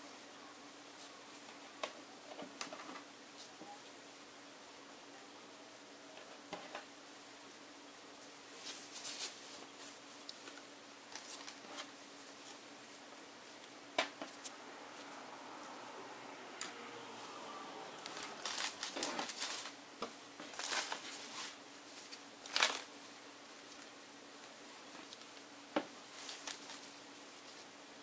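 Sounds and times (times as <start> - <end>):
fabric rustling: 17.1 - 19.8, 20.4 - 23.9.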